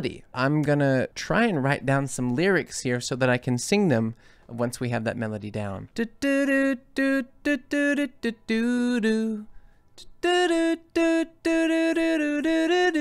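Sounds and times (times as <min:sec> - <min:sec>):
man singing wordless melody: 0:04.0 - 0:13.0.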